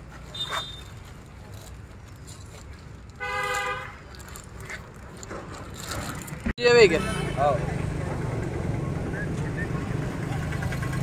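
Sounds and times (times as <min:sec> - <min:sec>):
vehicle horn toot: 0:00.3 - 0:00.9, 0:03.2 - 0:04.0, 0:06.8 - 0:07.7.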